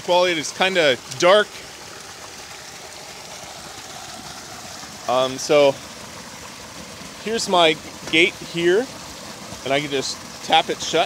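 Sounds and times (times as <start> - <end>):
churning white water: 0.0 - 11.0
water pouring from a flume: 0.0 - 11.0.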